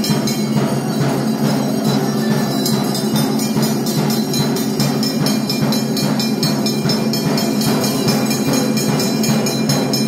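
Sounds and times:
clanging bells and percussion: 0.0 - 10.0.

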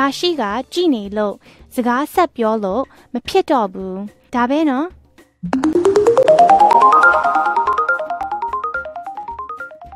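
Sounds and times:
rising run of short notes: 5.4 - 9.0.

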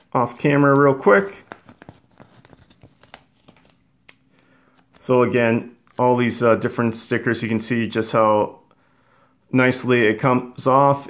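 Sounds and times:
sticker sheet crinkling: 1.3 - 3.8.

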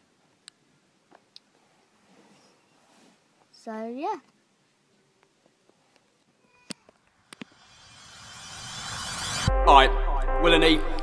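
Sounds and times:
rushing whoosh: 7.4 - 11.0.

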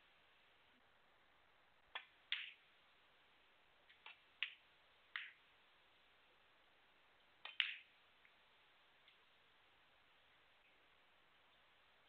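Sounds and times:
balls clicking together: 7.4 - 8.0.

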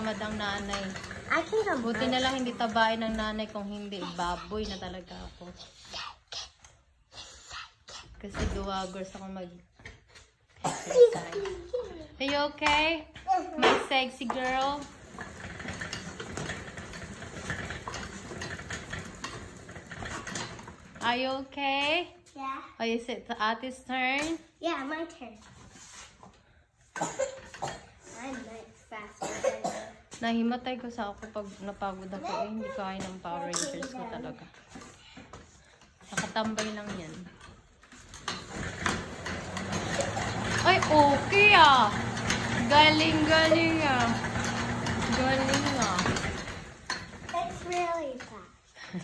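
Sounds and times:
flywheel whirring: 0.0 - 5.8, 10.9 - 21.5, 30.8 - 49.0.

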